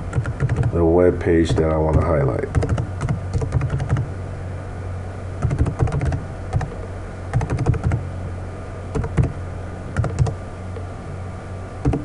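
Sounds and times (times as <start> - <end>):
steady low hum: 0.0 - 12.0
computer keyboard typing: 0.1 - 0.8, 1.5 - 4.1, 5.4 - 8.0, 9.0 - 9.3, 10.0 - 10.4.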